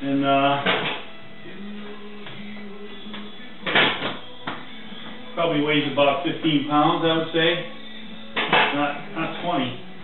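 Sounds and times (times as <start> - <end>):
background music held tones: 0.0 - 10.0.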